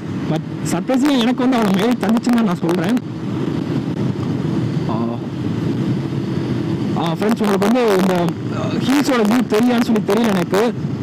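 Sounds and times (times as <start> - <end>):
motorcycle engine running steadily: 0.0 - 11.0
wind and road noise: 0.0 - 11.0.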